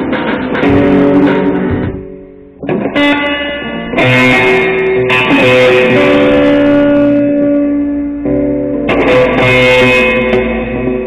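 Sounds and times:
electric guitar note ringing: 0.0 - 11.0.

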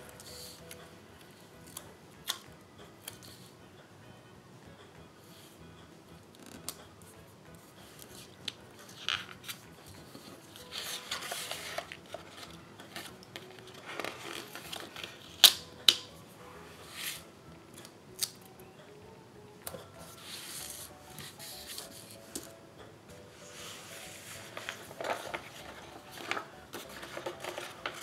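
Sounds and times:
paper rustling and sliding: 9.0 - 15.2, 23.4 - 28.0.

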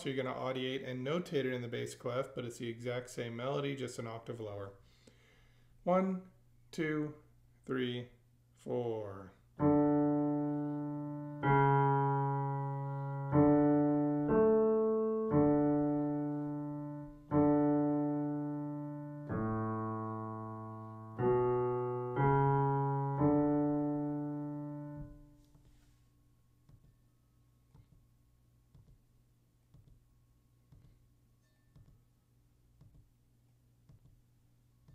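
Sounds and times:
slow piano melody: 9.6 - 25.5.

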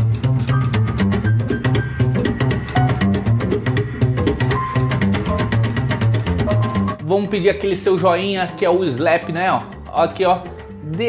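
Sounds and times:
slap double bass: 0.0 - 7.0
higher melodic line: 1.3 - 7.3.

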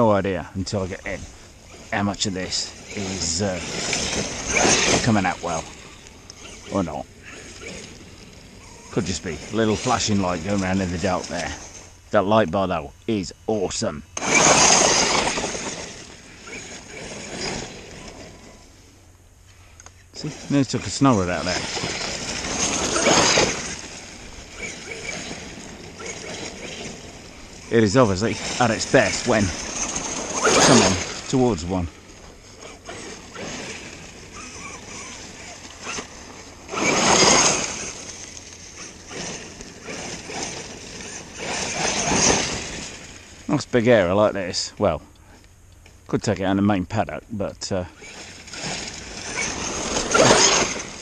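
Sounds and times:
electric buggy driving away: 0.0 - 12.2, 14.1 - 19.0, 20.1 - 44.2, 47.9 - 51.0
tyres churning grass: 0.0 - 45.0, 47.0 - 51.0.

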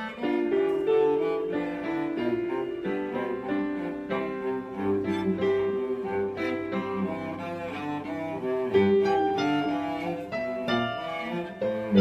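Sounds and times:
cello playing: 0.0 - 12.0
piano accompaniment: 0.0 - 12.0.

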